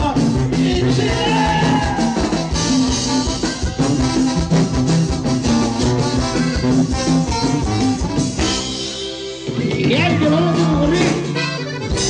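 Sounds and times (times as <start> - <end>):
live band playing dance music: 0.0 - 12.0
steady drum beat: 0.0 - 12.0.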